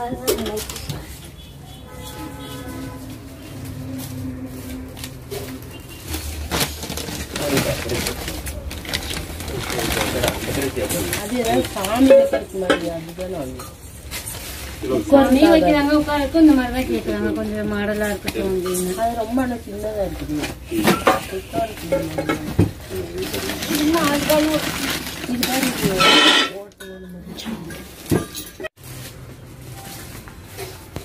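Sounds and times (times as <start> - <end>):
plastic wrapping crinkling: 2.5 - 26.8, 27.9 - 31.0.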